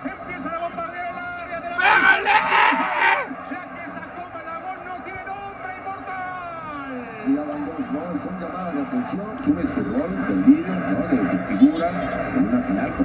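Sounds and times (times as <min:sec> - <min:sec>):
men talking: 0:00.0 - 0:13.0.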